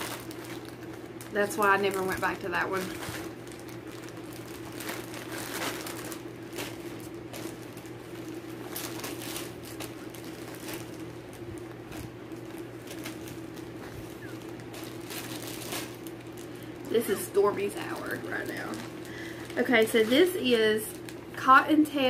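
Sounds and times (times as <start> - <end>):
fabric bags rustling and crinkling: 0.0 - 22.0
steady low hum: 0.0 - 22.0.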